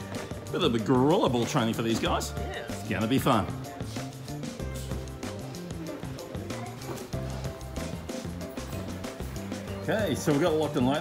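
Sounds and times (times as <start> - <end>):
music with beat and bass line: 2.0 - 10.8.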